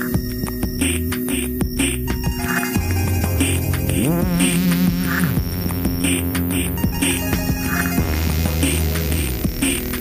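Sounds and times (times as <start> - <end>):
wobbling synth bass: 0.0 - 10.0.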